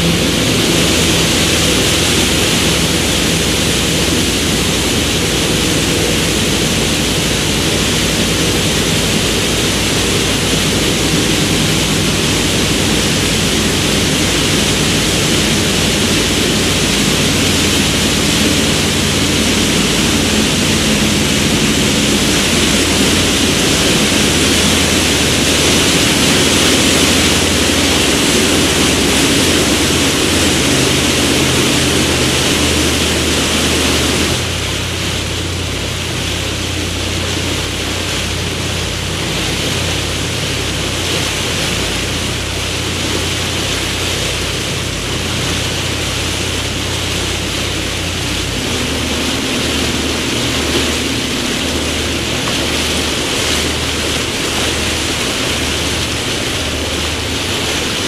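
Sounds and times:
boat engine droning: 0.0s - 58.0s
wake water rushing and churning: 0.0s - 58.0s.

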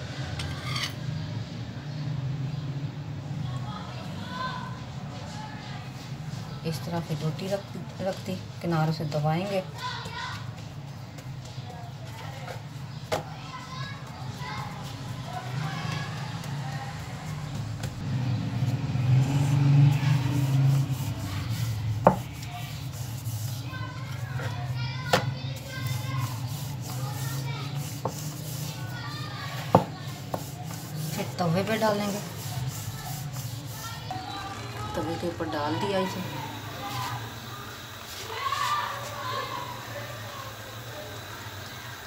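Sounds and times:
children chattering: 0.0s - 42.0s
rolling pin rolling dough: 19.2s - 37.3s.

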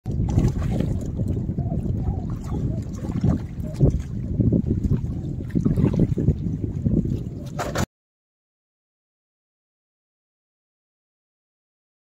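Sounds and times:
water lapping on rocks: 0.0s - 7.9s
wind rumbling on microphone: 0.0s - 7.9s.

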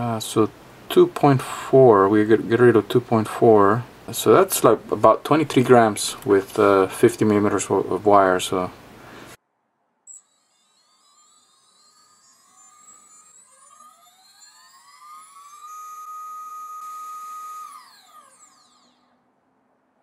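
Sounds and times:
electric motor whine: 10.1s - 19.4s.

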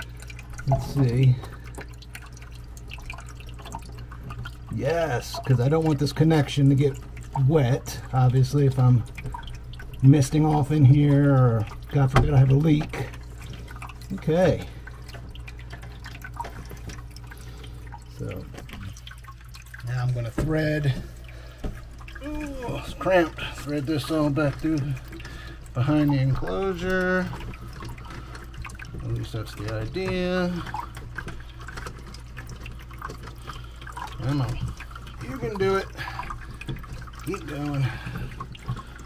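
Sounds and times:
water trickling and dripping: 0.0s - 39.0s.

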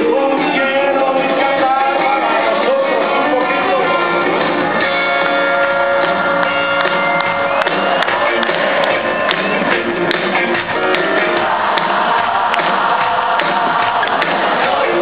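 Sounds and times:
live rock band music: 0.0s - 15.0s.

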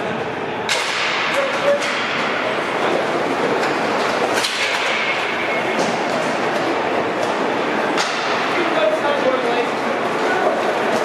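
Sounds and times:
hockey sticks and puck cracking: 0.7s - 2.4s, 3.0s - 8.8s.

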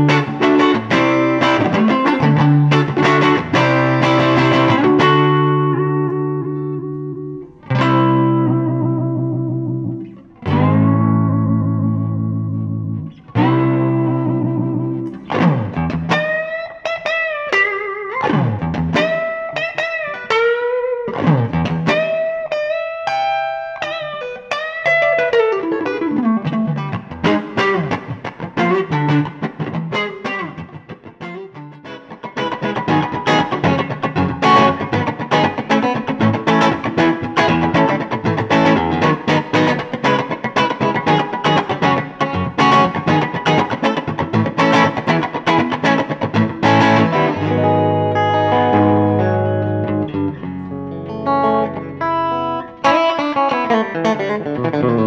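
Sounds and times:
electric guitar playing: 0.0s - 55.0s.

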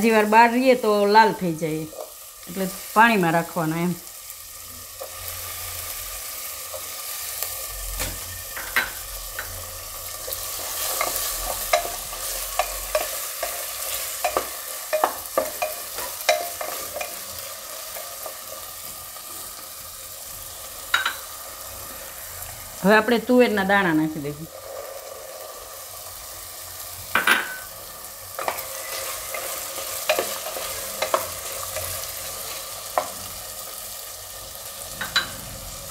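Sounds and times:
vegetables sizzling in hot oil: 0.0s - 35.9s.

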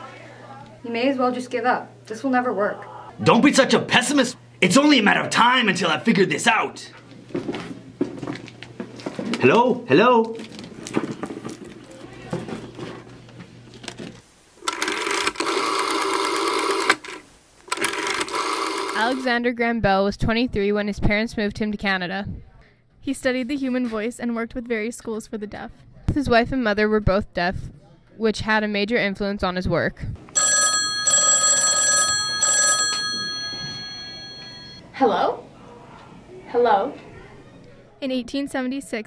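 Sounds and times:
telephone ringing: 14.7s - 19.2s, 30.3s - 34.8s
telephone bell ringing: 30.4s - 34.8s.

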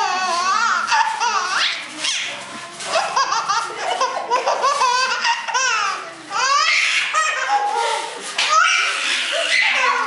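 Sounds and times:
baby laughing: 2.9s - 7.6s.

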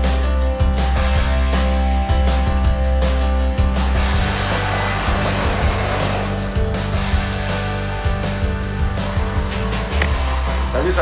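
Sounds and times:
background music with low notes: 0.0s - 11.0s
rushing noise: 3.8s - 7.3s.

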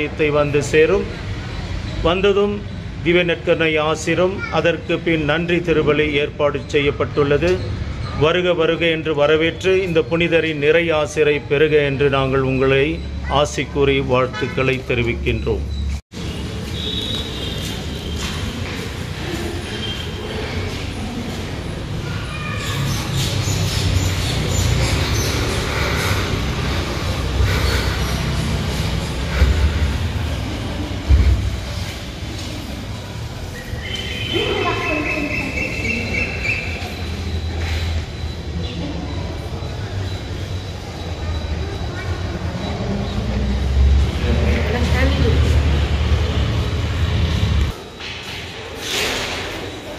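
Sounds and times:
faint voices: 17.5s - 47.1s.

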